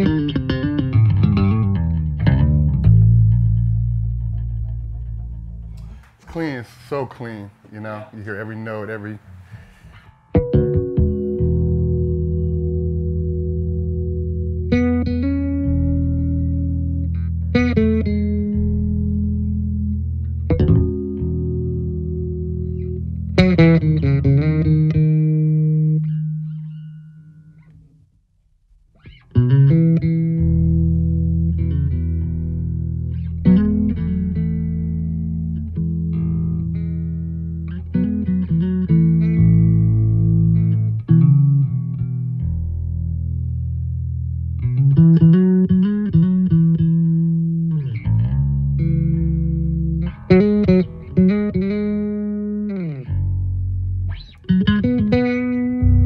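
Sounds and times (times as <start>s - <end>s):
electric bass notes: 0.0s - 56.0s.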